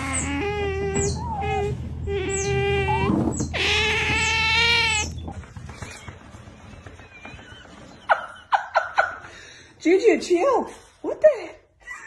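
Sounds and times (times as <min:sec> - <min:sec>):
otter whining squeals: 0:00.0 - 0:07.7.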